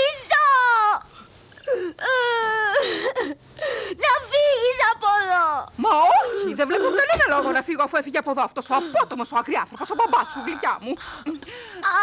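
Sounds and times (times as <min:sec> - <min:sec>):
girl wailing in distress: 0:01.9 - 0:03.4.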